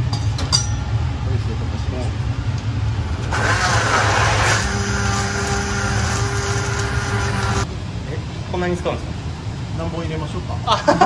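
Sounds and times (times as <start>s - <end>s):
immersion blender motor whine: 3.2s - 7.7s.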